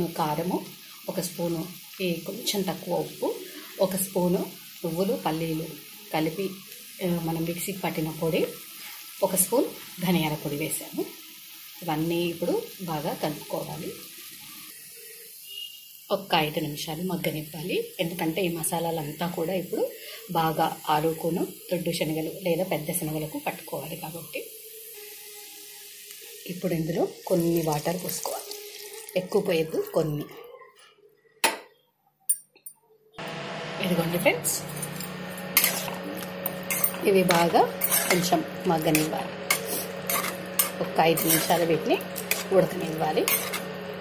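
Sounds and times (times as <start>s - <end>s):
woman speaking: 0.0s - 8.5s, 16.1s - 24.4s, 29.2s - 30.7s, 33.8s - 34.8s, 36.9s - 39.9s, 40.7s - 43.5s
food sizzling in a pan: 0.0s - 30.3s, 33.2s - 44.0s.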